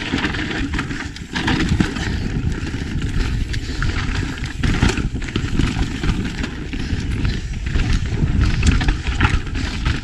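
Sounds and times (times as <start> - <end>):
bike knocks and rattles: 0.0 - 10.0
bike tyres on dirt and stones: 0.0 - 10.0.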